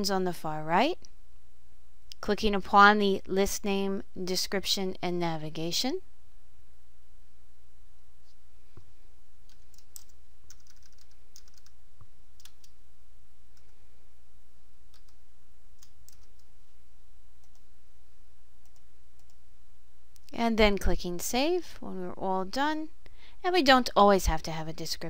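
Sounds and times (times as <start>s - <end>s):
computer keyboard keystrokes: 9.5s - 11.7s, 15.8s - 16.5s.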